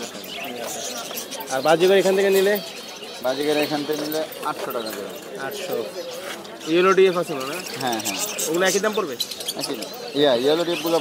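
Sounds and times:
busy market background: 0.0 - 11.0.

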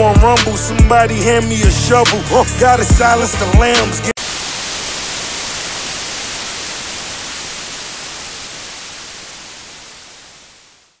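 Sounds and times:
tv static hiss: 4.2 - 11.0.

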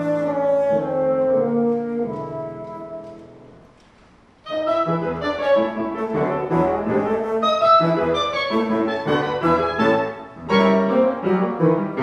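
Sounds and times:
oboe and bassoon playing: 0.0 - 3.2, 4.5 - 12.0.

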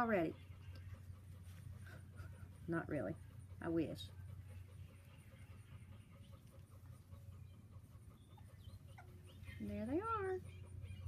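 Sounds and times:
low steady hum: 0.0 - 11.0
puppies playing: 0.0 - 11.0.

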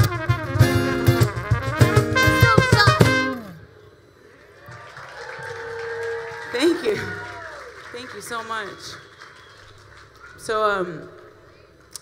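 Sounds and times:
light applause: 4.2 - 12.0.

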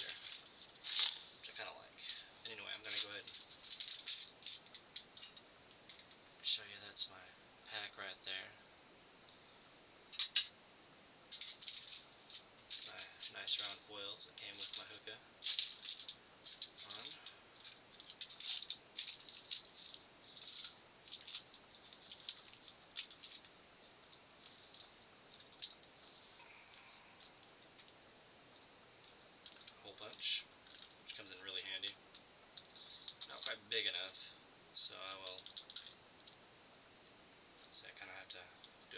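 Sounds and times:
faint high whine: 0.0 - 38.9.

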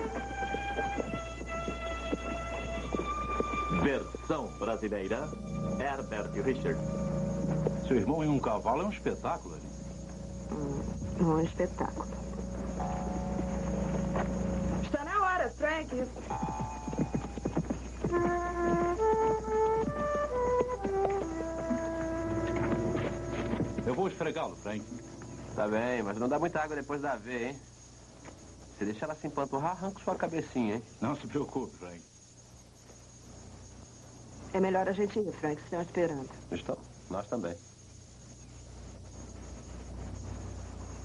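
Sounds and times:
horse hoofbeats: 0.0 - 27.0
steady low hum: 0.0 - 29.3, 32.1 - 41.0
faint steady hiss: 0.0 - 41.0.

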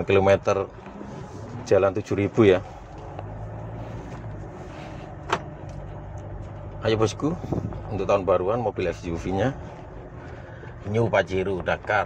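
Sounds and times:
diesel engine drone in cabin: 0.0 - 12.0.

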